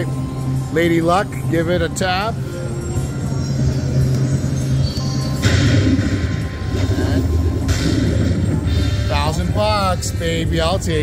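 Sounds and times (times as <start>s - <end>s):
slot machine bonus music: 0.0s - 11.0s
bright sound effect: 3.8s - 9.9s.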